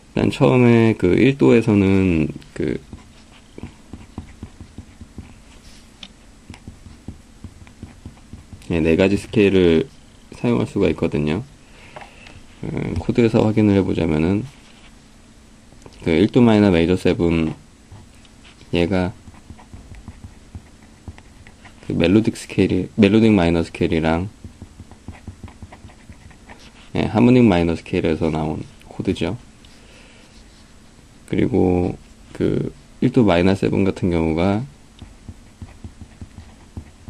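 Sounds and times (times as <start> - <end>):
marker scratching on paper: 2.7 - 9.4, 18.0 - 22.2, 24.4 - 27.1, 35.0 - 37.0.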